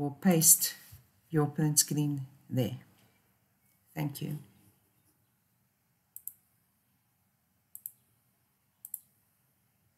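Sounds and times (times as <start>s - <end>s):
faint room hiss: 0.0s - 9.9s
computer mouse clicking: 6.1s - 6.5s, 7.7s - 8.0s, 8.8s - 9.2s.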